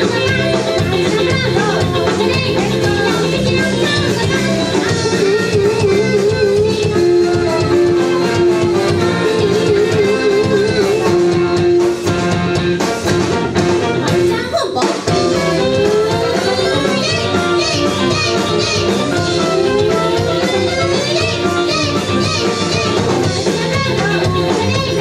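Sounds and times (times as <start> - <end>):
live rock band with horns: 0.0 - 25.0.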